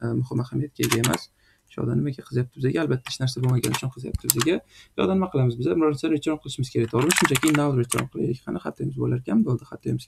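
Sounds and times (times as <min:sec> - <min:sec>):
person talking: 0:00.0 - 0:10.0
computer keyboard typing: 0:00.8 - 0:01.2, 0:03.0 - 0:04.5, 0:06.8 - 0:08.1.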